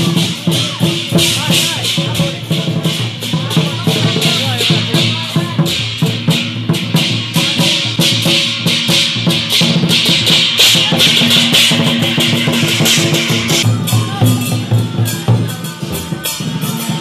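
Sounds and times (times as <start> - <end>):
brass hand cymbals clashing: 0.0 - 17.0
large barrel drum beating: 0.0 - 17.0.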